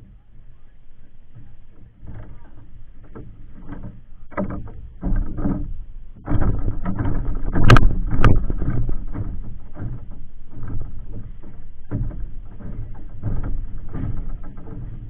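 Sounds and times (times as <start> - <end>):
knocking on wooden planks: 1.3 - 15.0
sharp loud knocks: 1.4 - 15.0.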